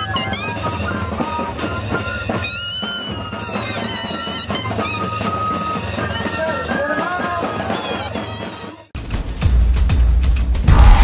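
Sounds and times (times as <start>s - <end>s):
cane flutes playing melody: 0.0s - 8.5s
snare drums: 0.0s - 11.0s
bass drum: 9.4s - 11.0s
cymbals: 10.7s - 11.0s.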